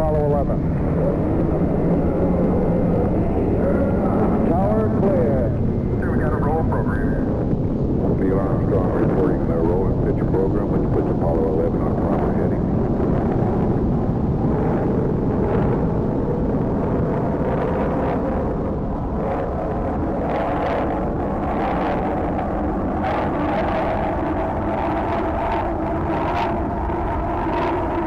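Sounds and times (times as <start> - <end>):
rocket engines rumbling: 0.0 - 28.0.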